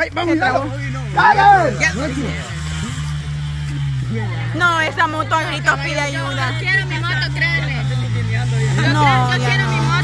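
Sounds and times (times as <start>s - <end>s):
motorcycle engine running: 0.0s - 10.0s
person shouting: 1.2s - 1.8s.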